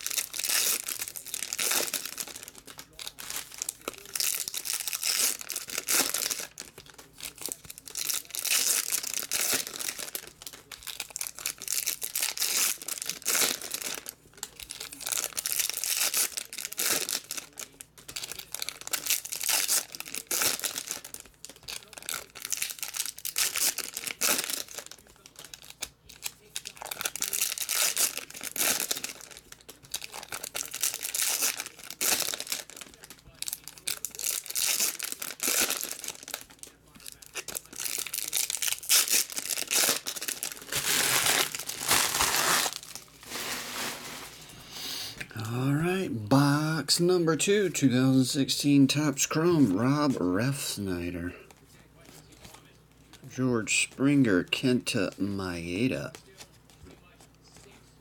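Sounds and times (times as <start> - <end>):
foil wrappers tearing and crinkling: 0.0 - 44.7.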